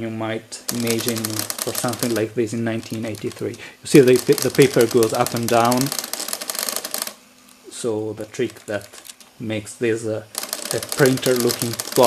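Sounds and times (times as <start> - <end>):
pen plotter ticking: 0.7 - 7.2, 10.4 - 12.0.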